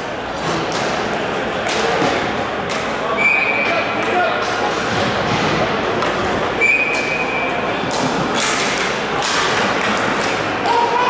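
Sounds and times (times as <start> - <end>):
ball hockey game play: 0.0 - 11.0
crowd noise: 0.0 - 11.0.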